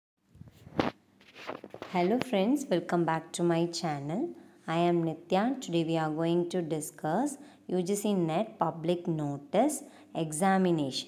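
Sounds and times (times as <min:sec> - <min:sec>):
woman's voice: 0:01.9 - 0:11.0.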